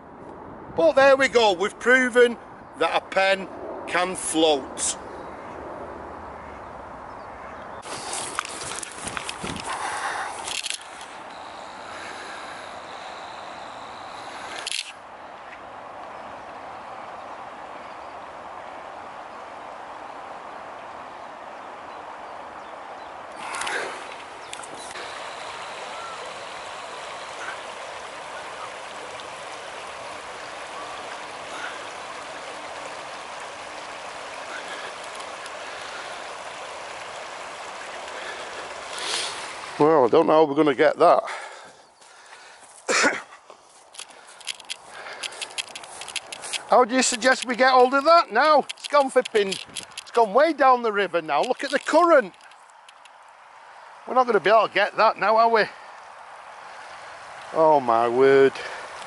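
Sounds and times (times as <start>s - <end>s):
river rushing over shallows: 7.8s - 40.3s, 43.8s - 59.0s.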